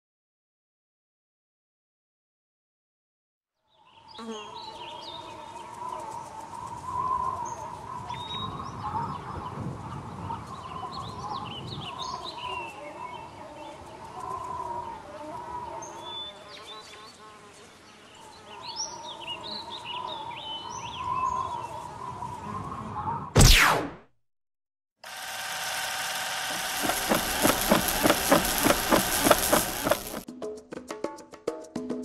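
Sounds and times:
small birds chirping: 3.8s - 23.2s, 26.5s - 30.2s
wavering hum: 25.1s - 30.2s.

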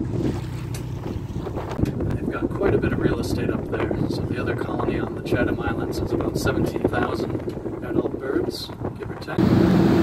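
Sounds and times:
boat engine: 0.0s - 8.1s, 8.9s - 10.0s
wind on microphone: 0.0s - 10.0s.

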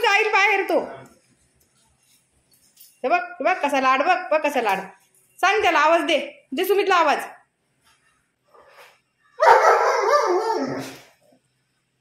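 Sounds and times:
dog barking roughly: 9.4s - 11.0s.

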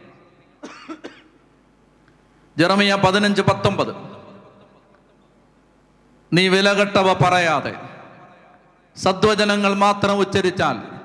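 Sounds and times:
person coughing: 0.6s - 1.4s.

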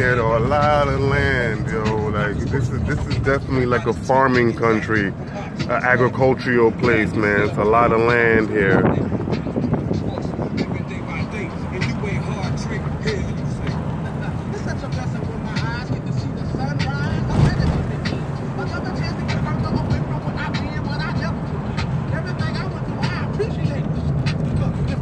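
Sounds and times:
car engine and tyres rumbling: 0.0s - 25.0s
car jolt: 17.2s - 18.3s.

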